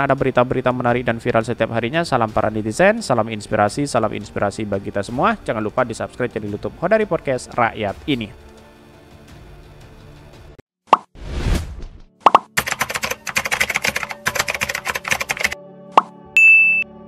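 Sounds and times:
soft background music: 0.0 - 10.6, 12.6 - 17.0
pop sound effect: 10.9 - 11.2, 12.2 - 12.6, 15.9 - 16.2
keyboard typing clicks: 12.3 - 15.6
bright electronic ding: 16.4 - 17.0.

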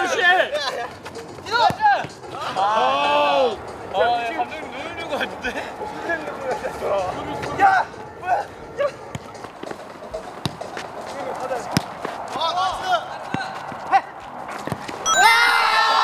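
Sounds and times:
ball being kicked: 11.7 - 11.9
crowd yelling and cheering: 15.0 - 16.0
players shouting: 15.1 - 16.0.

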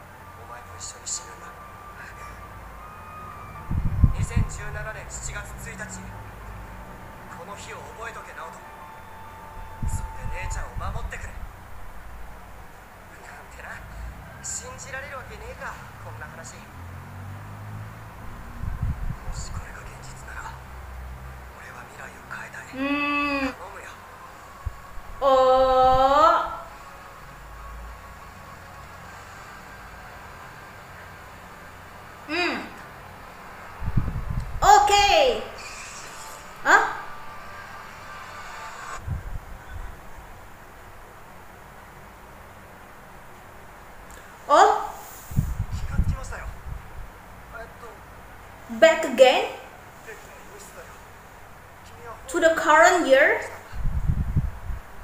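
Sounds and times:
faint high tones: 0.0 - 11.4
low hum: 0.0 - 48.8
steady low hiss: 0.0 - 55.0.

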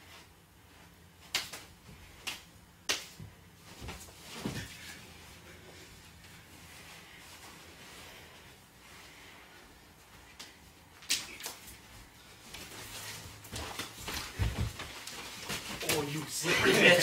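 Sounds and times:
wrestling scuffling: 3.0 - 8.0, 9.9 - 17.0
bodies thumping: 3.2 - 5.0, 13.4 - 17.0.

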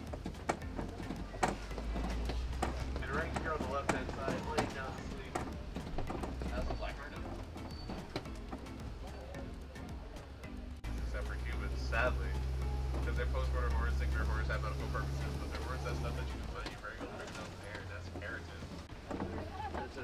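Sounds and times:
knocks and rattles: 0.0 - 20.0
truck rumbling on rough track: 0.0 - 20.0.

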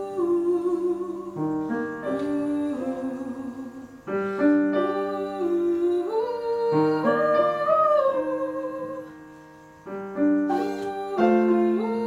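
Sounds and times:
woman singing with vibrato: 0.0 - 9.2, 10.4 - 12.0
grand piano accompaniment: 0.0 - 12.0.

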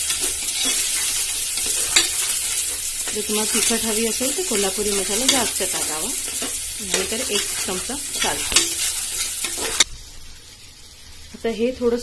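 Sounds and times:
spoon stirring and scraping: 0.0 - 9.9
sauce sizzling in a pot: 0.0 - 12.0.

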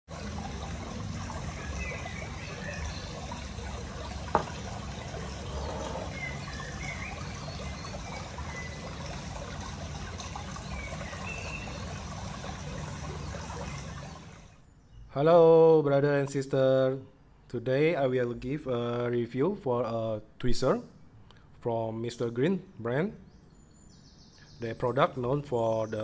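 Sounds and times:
trickling water: 0.0 - 14.8, 23.5 - 26.0.

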